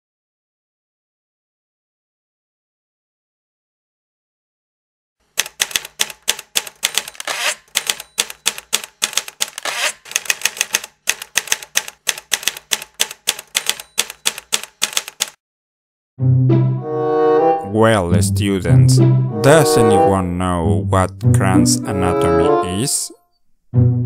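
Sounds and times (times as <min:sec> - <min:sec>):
typewriter keys clicking: 0:05.4 - 0:15.4.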